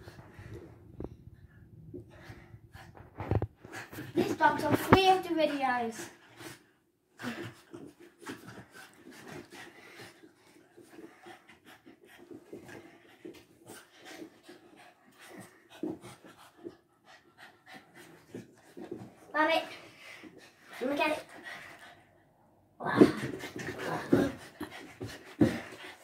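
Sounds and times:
dog panting: 1.4 - 22.3, 23.0 - 26.0.

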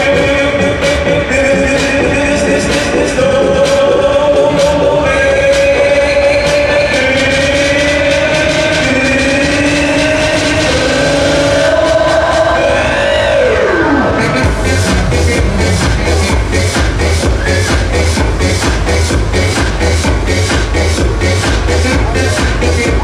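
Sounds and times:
electronic dance music: 0.0 - 23.0
heavy bass beat: 0.0 - 23.0
falling sweep: 11.1 - 18.0.

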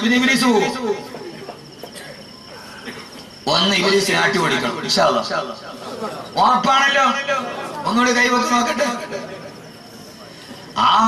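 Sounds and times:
man speaking through a microphone: 0.0 - 1.2, 3.4 - 5.8, 6.4 - 9.4, 10.8 - 11.0.

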